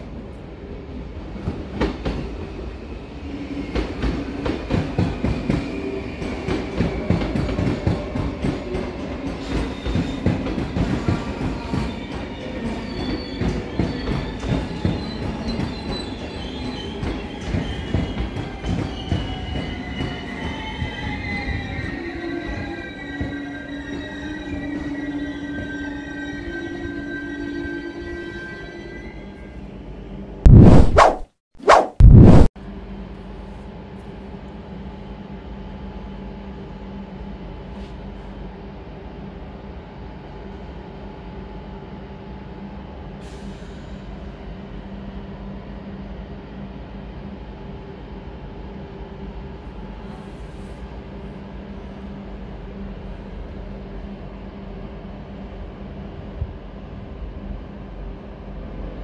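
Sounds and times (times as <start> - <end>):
train wheels squealing: 2.6 - 29.6.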